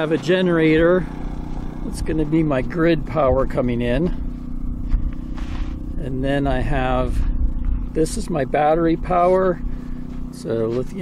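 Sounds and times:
generator engine humming: 0.0 - 11.0.

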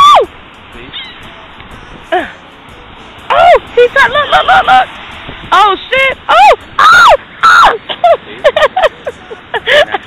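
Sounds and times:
woman shrieking: 0.0 - 0.3, 6.3 - 7.9
seagull call: 0.9 - 1.3.

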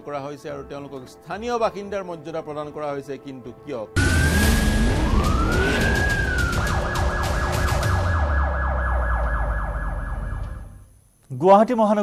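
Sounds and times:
burst of noise: 4.0 - 10.1
low rumble: 4.0 - 10.8
police siren wail and yelp: 4.0 - 10.8.

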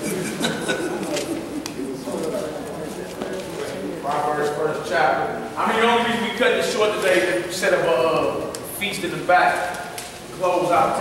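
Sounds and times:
low male voices murmuring: 0.0 - 8.5.

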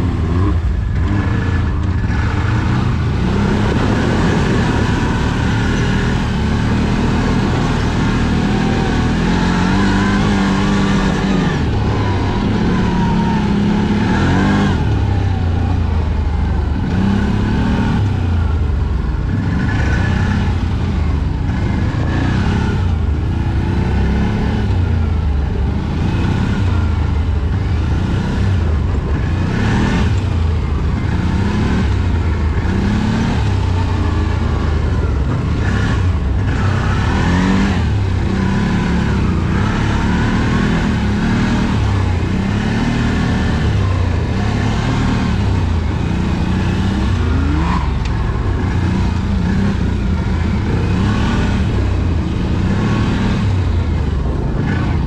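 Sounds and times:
off-road vehicle engine revving: 0.0 - 55.0.

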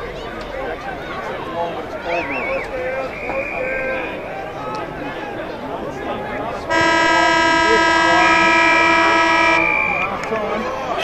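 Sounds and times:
siren long blast: 6.7 - 10.2.

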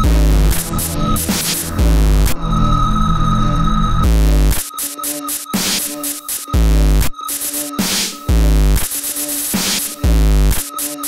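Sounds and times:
heavy hit of bass and noise: 0.0 - 3.0, 4.0 - 4.6
pulsing bass line: 0.0 - 4.6, 6.6 - 7.1, 8.3 - 8.8, 10.0 - 10.6.

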